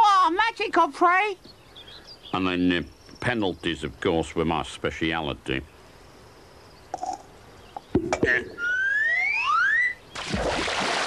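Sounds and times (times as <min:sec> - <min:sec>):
rising whistle sound effect: 0:08.6 - 0:10.0
splash in water: 0:10.2 - 0:11.0.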